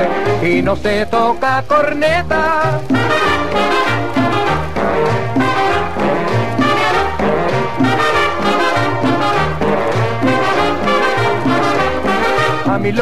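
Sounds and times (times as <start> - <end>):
brass section: 0.0 - 13.0
percussion: 0.0 - 13.0.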